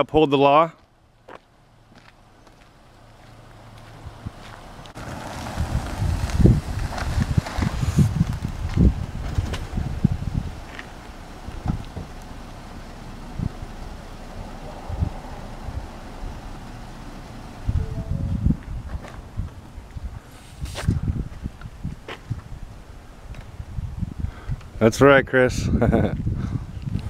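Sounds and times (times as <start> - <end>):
wind buffeting microphone: 4.0 - 27.0.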